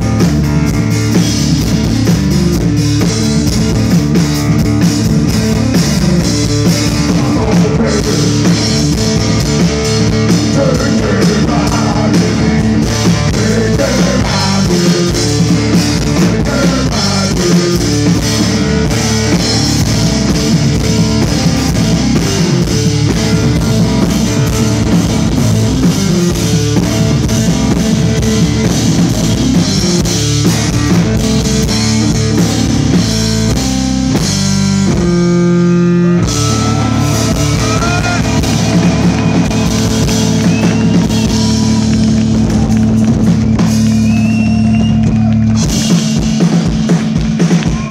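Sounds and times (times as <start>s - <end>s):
drum kit: 0.0s - 47.9s.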